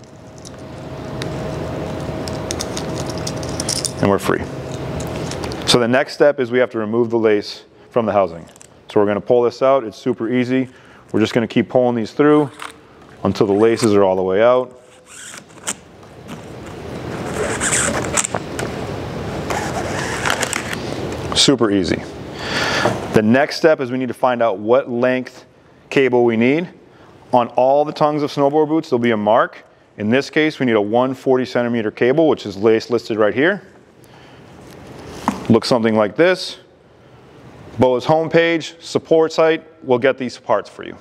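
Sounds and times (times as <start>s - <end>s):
steady low hum: 0.0s - 41.0s
wire scraping through plastic: 14.8s - 18.4s, 19.4s - 20.8s.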